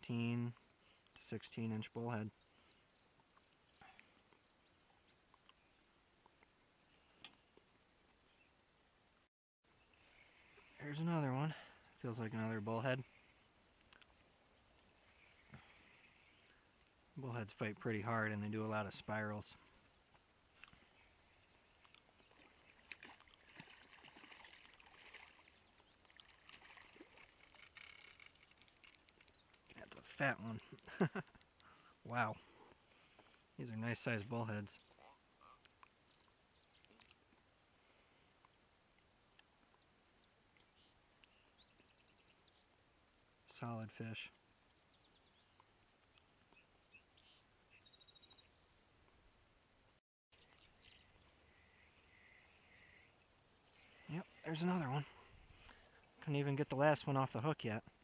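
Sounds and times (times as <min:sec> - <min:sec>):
faint bird chirps: 0:00.1 - 0:49.8, 0:50.4 - 0:56.5.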